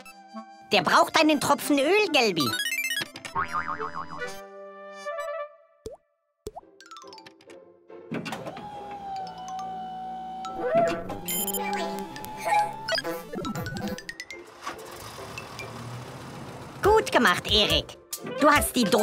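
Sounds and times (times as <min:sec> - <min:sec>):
cartoon background music: 0:00.0 - 0:14.9, 0:16.8 - 0:19.0
sliding-pitch comic effects: 0:09.2 - 0:14.0.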